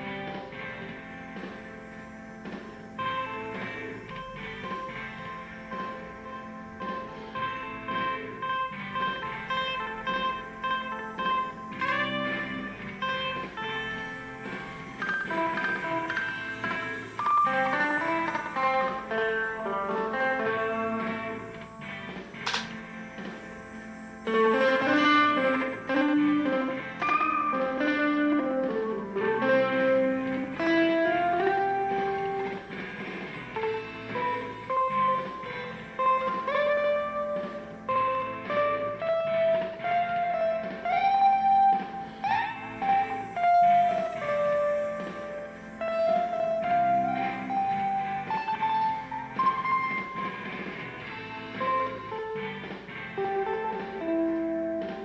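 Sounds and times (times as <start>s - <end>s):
melodic guitar with sliding notes: 0.0s - 55.0s
sharp click: 22.4s - 22.8s.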